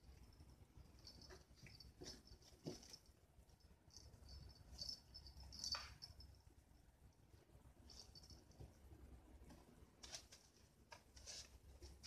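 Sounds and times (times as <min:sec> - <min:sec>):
soft rustles on doormat: 0:09.4 - 0:12.0.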